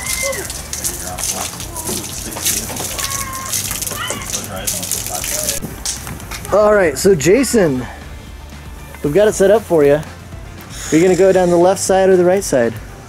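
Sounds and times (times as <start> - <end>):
faint voices: 0.0 - 5.6
crackly water spatter: 0.0 - 13.0.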